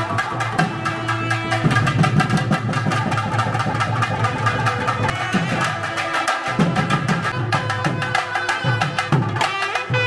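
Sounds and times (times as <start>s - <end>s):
drums beaten in a fast roll: 0.0s - 10.0s.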